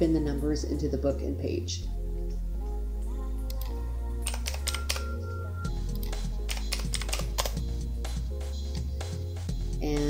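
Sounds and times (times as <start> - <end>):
background music with held notes: 0.0 - 10.0
keyboard keys clicking: 3.5 - 5.3, 5.9 - 7.6.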